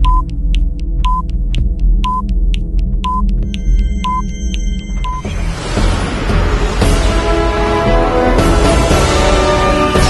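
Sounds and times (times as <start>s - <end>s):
low throbbing drone: 0.0s - 9.4s
electronic bleeps: 1.0s - 1.3s, 2.0s - 2.3s, 3.0s - 5.3s
short electronic beeps: 3.0s - 5.3s.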